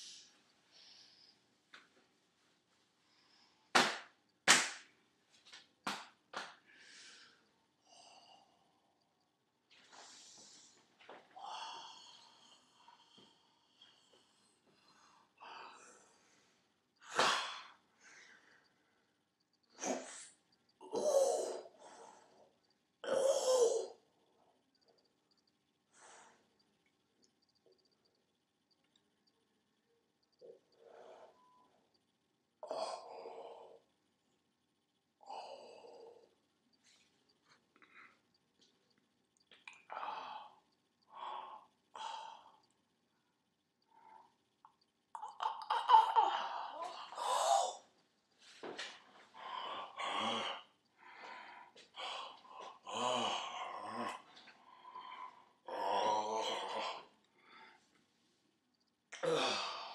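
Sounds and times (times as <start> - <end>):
man breathing: 6.6 - 19.1, 46.4 - 55.6, 56.7 - 58.0.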